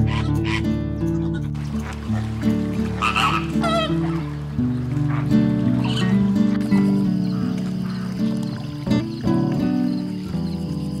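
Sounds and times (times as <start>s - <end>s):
flamingos honking: 0.0s - 8.8s
background music with low notes: 0.0s - 11.0s.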